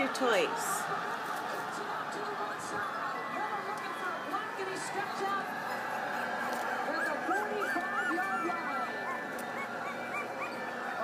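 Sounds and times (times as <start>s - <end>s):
small dog whining: 6.9s - 11.0s.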